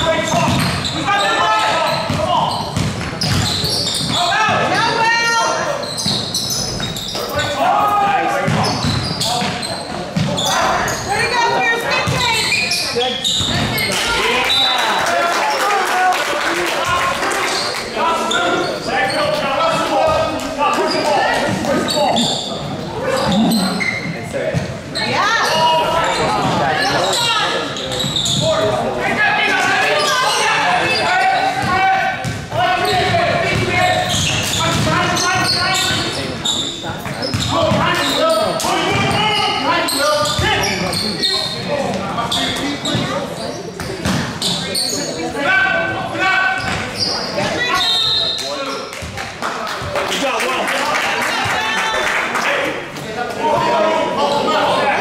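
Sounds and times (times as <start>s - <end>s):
people talking and calling out: 0.0s - 55.0s.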